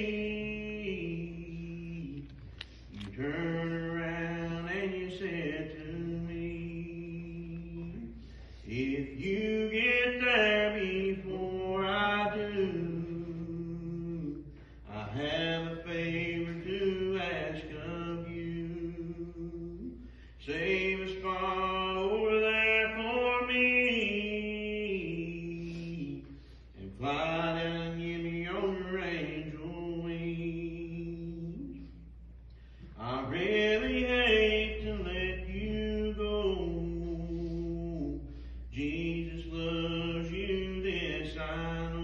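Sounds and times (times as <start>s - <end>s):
person singing slow song: 0.0s - 42.0s.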